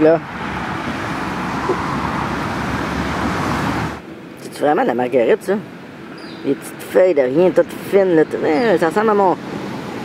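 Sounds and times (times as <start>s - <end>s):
road traffic rushing: 0.0s - 10.0s.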